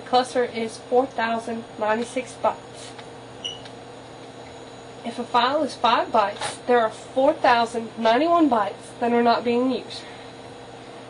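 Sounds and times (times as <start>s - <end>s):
low electrical hum and hiss: 0.0s - 11.0s.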